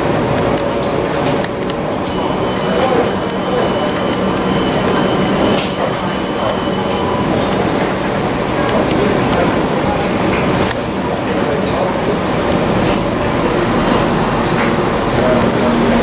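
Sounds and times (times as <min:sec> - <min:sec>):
train running at platform: 0:00.0 - 0:16.0
short high electronic beeps: 0:02.1 - 0:07.2.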